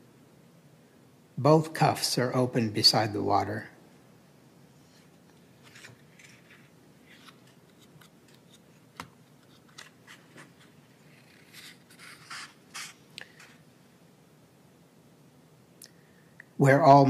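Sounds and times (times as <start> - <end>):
book pages rustling: 4.8 - 13.6.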